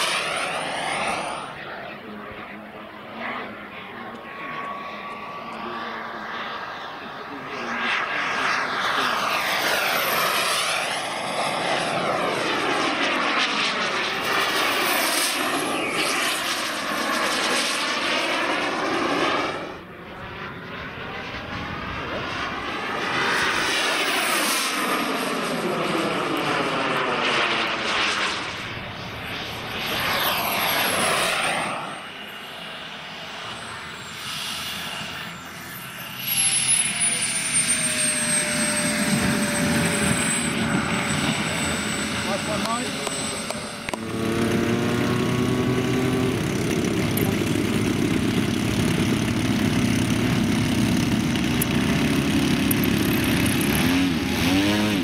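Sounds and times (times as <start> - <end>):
model jet turbine whining: 0.0 - 55.0.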